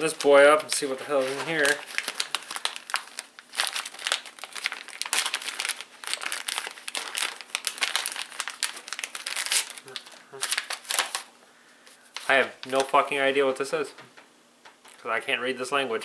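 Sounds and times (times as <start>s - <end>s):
plastic bag crinkling: 0.0s - 13.3s.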